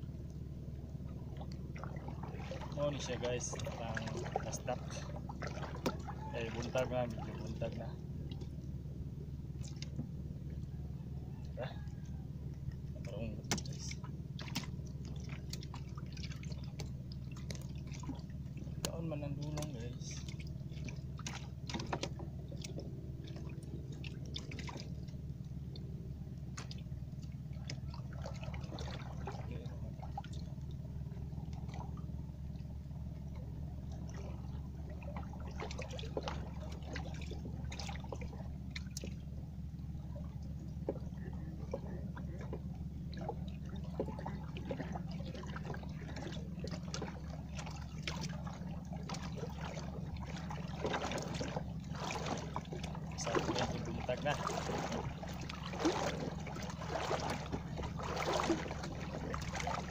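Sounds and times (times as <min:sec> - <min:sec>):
steady low hum: 0:00.0 - 0:59.9
water dripping and splashing: 0:01.1 - 0:08.6, 0:09.6 - 0:10.1, 0:12.5 - 0:59.9
small irregular ticks and clicks: 0:09.5 - 0:10.7, 0:12.5 - 0:28.6, 0:35.7 - 0:44.9.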